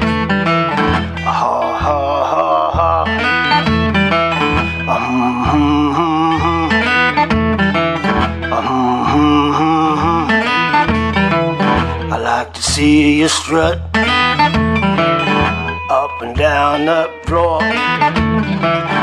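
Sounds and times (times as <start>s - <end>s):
man singing: 0.0s - 14.5s, 15.7s - 19.0s
acoustic guitar blues riff: 0.0s - 19.0s.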